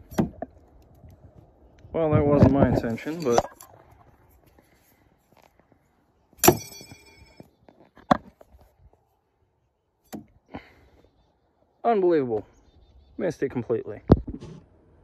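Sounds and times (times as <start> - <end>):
knife striking with metallic clang: 6.4 - 7.3.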